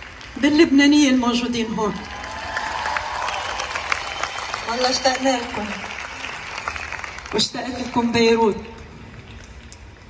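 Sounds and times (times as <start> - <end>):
audience applauding: 0.0 - 0.5, 1.8 - 9.7
audience cheering: 1.8 - 7.4.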